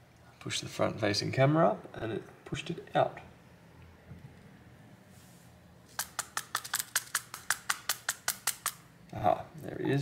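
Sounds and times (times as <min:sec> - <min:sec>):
rapid light clicks: 0:06.0 - 0:08.8.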